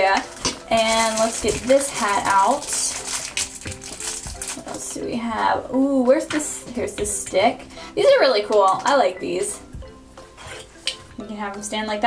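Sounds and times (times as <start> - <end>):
plastic wrapper crinkling: 0.0 - 5.0
soft background music: 0.0 - 12.0.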